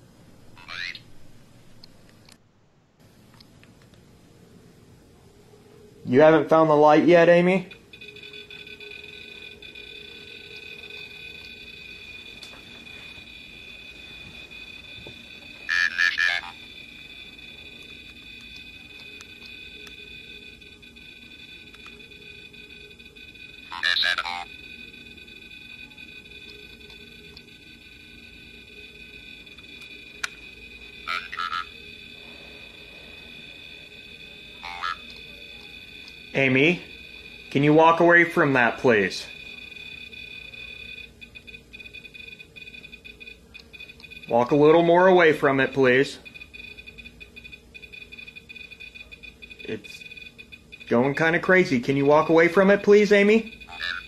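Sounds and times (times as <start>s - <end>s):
high-pitched electronic whine: 5.5s - 54.0s.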